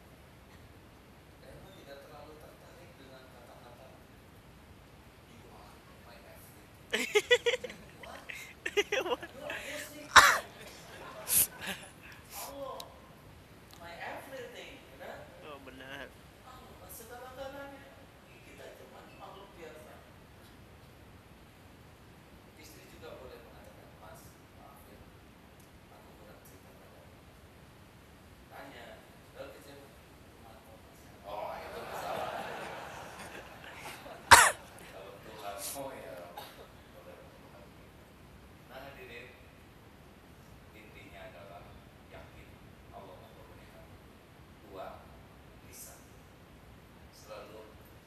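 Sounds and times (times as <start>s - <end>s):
faint background voices: 6.9s - 13.0s
person coughing: 7.0s - 10.5s, 11.3s - 12.5s, 33.2s - 34.7s.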